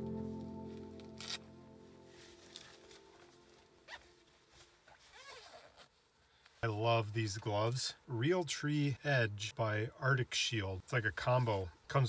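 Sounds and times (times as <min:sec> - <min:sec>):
background music: 0:00.0 - 0:03.9
gear rustling: 0:02.1 - 0:06.5.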